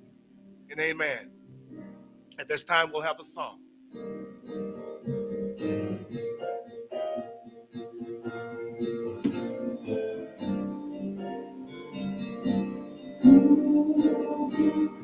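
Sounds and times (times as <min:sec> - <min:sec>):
electronic keyboard playing chords: 0:00.0 - 0:15.0.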